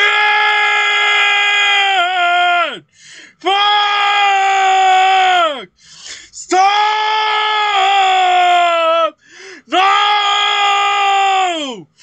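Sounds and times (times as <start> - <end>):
man shouting angry cry: 0.0 - 2.8, 3.4 - 5.7, 6.4 - 11.8
quick breath: 2.9 - 3.4, 5.8 - 6.4, 9.2 - 9.7.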